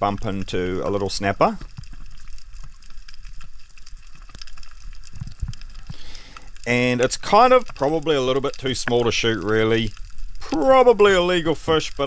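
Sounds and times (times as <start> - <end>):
underwater crackling clicks: 0.0 - 10.5
low rumble of moving water: 0.0 - 12.0.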